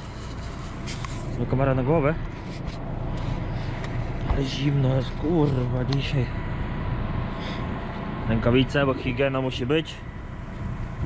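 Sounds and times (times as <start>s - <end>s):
tractor engine running: 0.0s - 11.0s.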